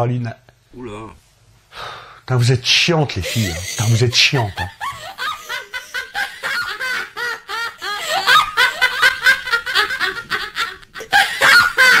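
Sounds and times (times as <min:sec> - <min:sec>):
canned laughter of women giggling: 0:03.3 - 0:12.0.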